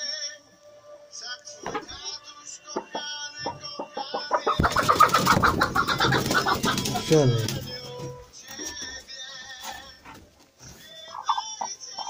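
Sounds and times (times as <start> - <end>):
hen clucking and squawking: 2.9 - 8.8, 9.6 - 12.0.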